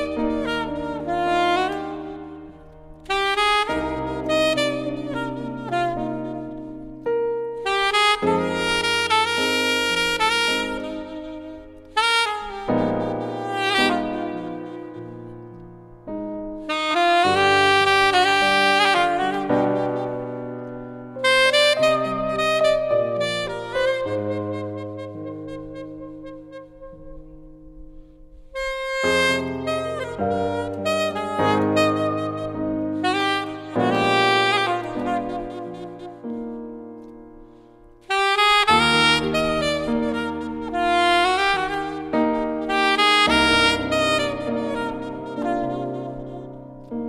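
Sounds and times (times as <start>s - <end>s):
piano accompaniment: 0.0s - 47.0s
saxophone melody: 0.0s - 47.0s.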